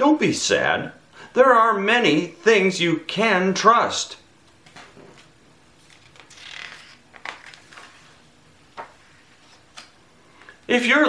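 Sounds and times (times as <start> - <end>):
book page turning: 4.6 - 10.6.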